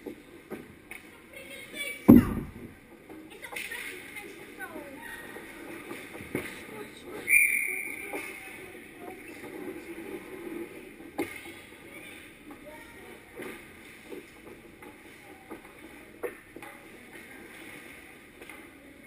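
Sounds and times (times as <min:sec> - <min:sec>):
murmur of rink crowd: 0:00.0 - 0:19.0
knocks of sticks and skates: 0:02.1 - 0:04.5, 0:05.1 - 0:19.0.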